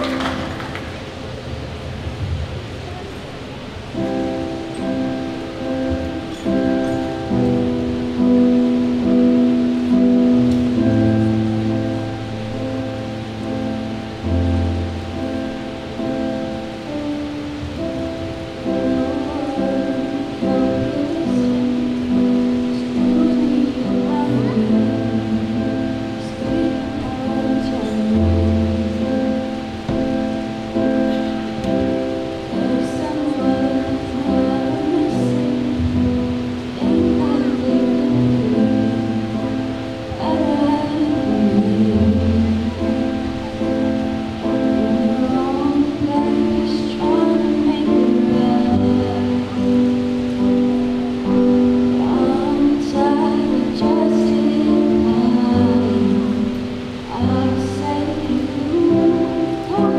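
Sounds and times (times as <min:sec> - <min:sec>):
electric keyboard piano chords: 0:00.0 - 0:59.9.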